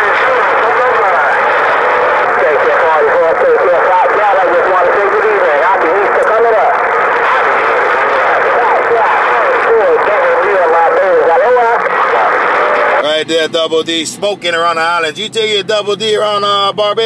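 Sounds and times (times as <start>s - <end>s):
tinny radio voices: 0.0s - 17.0s.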